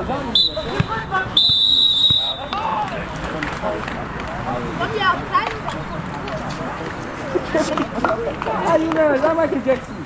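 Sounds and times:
voices of players and spectators: 0:00.0 - 0:10.0
referee's whistle blast: 0:00.3 - 0:02.6.

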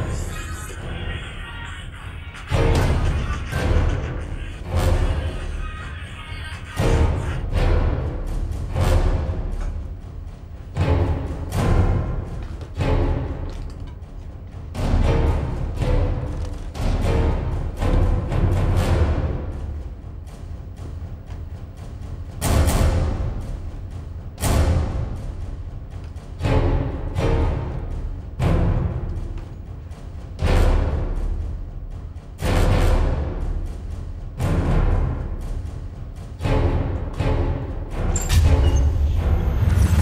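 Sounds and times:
film music: 0:00.0 - 0:40.0.

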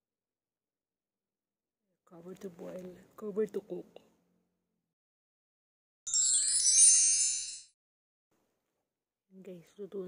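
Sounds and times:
sparkling chime sound effect: 0:06.1 - 0:07.8.

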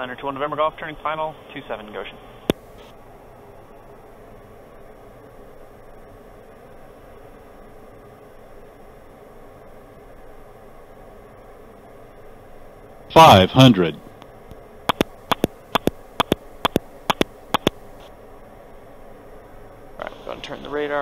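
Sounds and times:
radio click: 0:14.9 - 0:17.8
aircraft cabin noise hiss: 0:14.9 - 0:21.0.

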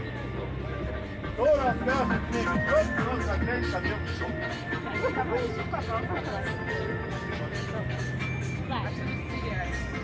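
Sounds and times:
background music: 0:00.0 - 0:10.0
bus engine low hum: 0:00.0 - 0:10.0
passengers talking: 0:00.0 - 0:10.0.

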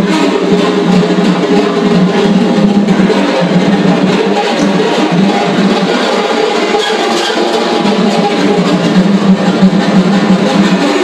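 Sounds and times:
rapid strikes on snare drums: 0:00.0 - 0:11.0.

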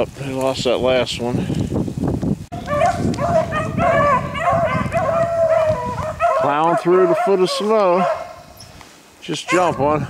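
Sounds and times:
dogs baying: 0:02.6 - 0:08.5, 0:09.4 - 0:10.0.

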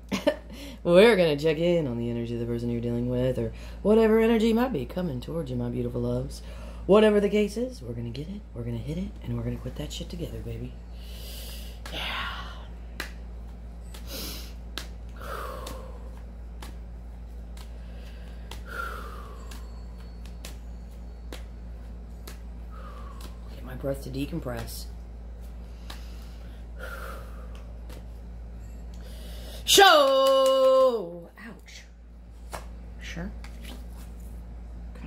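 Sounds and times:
steady low hum: 0:00.0 - 0:35.0
person breathing: 0:10.9 - 0:12.8, 0:14.0 - 0:16.3, 0:17.7 - 0:20.0, 0:22.6 - 0:23.5, 0:25.6 - 0:27.7, 0:28.9 - 0:29.7.

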